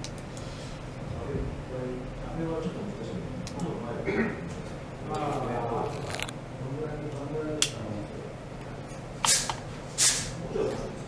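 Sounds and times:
short hissing noises: 9.2 - 10.4.

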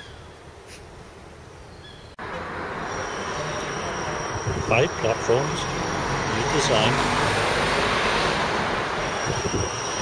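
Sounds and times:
road traffic passing: 0.0 - 10.0
high-pitched squeal of train wheels: 2.8 - 7.0, 8.9 - 10.0.

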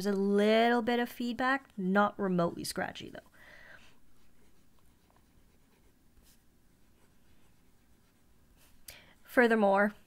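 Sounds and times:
fountain pen scratching on paper: 4.2 - 8.7.

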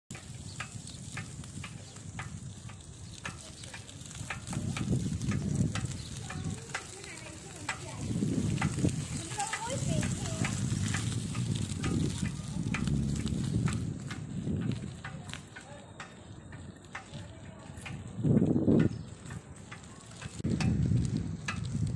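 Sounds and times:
low rumbling gusts: 3.9 - 15.6, 17.8 - 19.6, 20.3 - 21.9.

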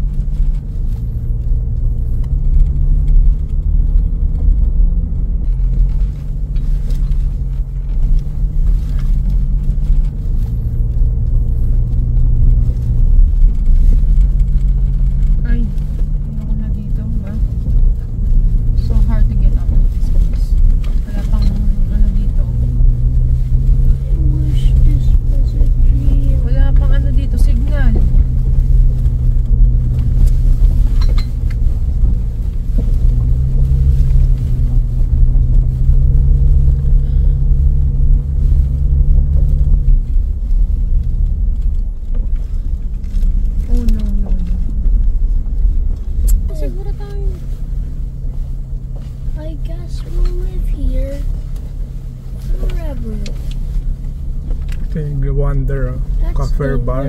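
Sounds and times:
tyres on gravel: 0.0 - 57.0
vehicle engine drone: 0.0 - 57.0.

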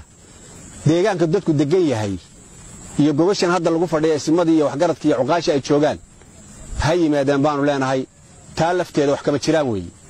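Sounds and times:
faint steady hiss: 0.0 - 10.0
man speaking: 0.8 - 10.0.

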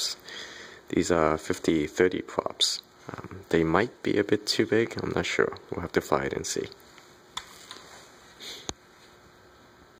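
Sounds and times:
short breathy hiss: 8.4 - 8.7.

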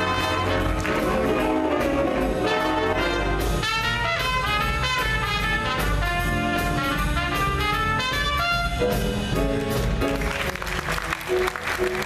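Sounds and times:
jazz big band playing swing: 0.0 - 12.0.

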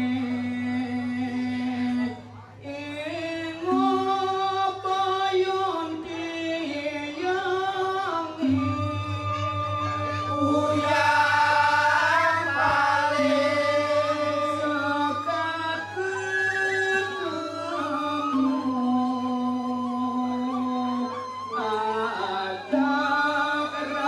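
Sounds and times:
bamboo flute: 3.6 - 24.0
lead voice gliding notes: 8.3 - 16.2
men singing in chorus: 10.2 - 16.4, 21.1 - 24.0.

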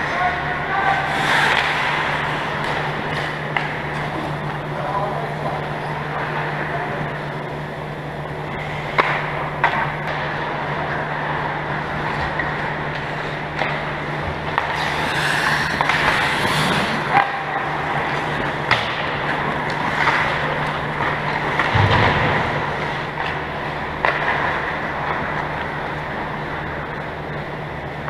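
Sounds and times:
hockey sticks and puck clacking: 0.0 - 4.2, 14.5 - 22.0
steady low hum: 0.0 - 28.0
skate blades scraping ice: 0.7 - 4.2, 14.5 - 17.6.

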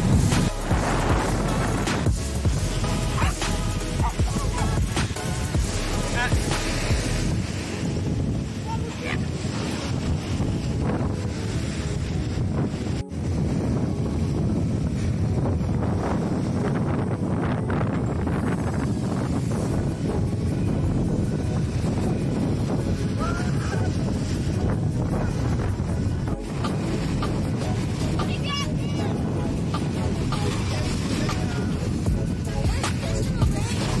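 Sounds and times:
surf washing up beach: 0.0 - 34.0
wind buffeting microphone: 0.0 - 34.0.

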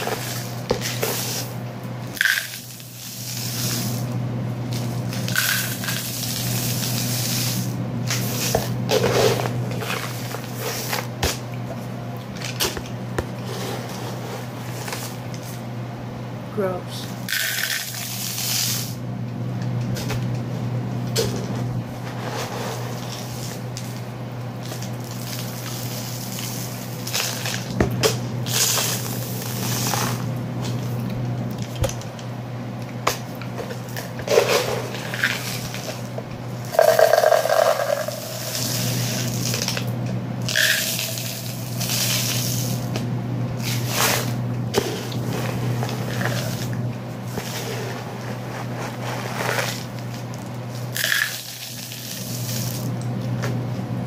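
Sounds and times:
dry grains poured between plastic cups: 5.3 - 7.7, 36.7 - 39.6, 40.5 - 42.8.

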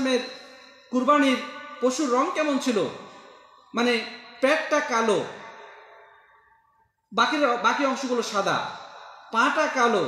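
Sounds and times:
man speaking: 0.0 - 5.6, 7.1 - 10.0.

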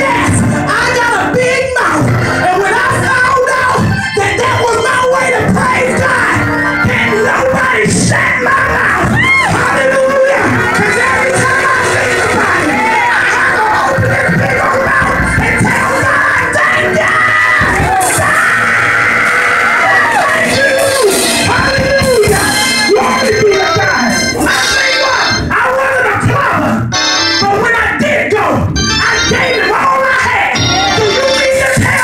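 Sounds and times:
church music: 0.0 - 32.0.

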